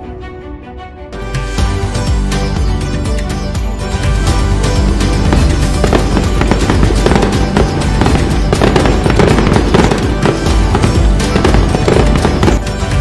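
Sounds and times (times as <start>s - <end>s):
festive music: 0.0s - 13.0s
firecrackers crackling and popping: 5.1s - 13.0s.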